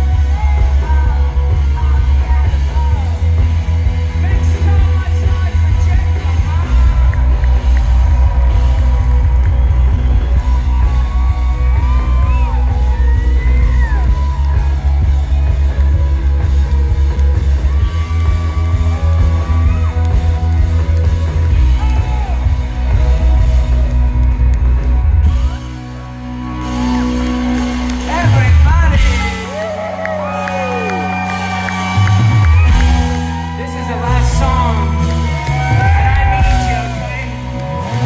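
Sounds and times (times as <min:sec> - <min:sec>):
rock band playing live: 0:00.0 - 0:38.0.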